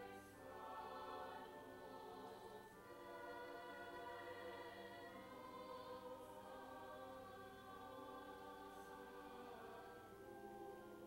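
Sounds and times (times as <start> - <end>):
mixed choir singing held chords: 0.0 - 11.0.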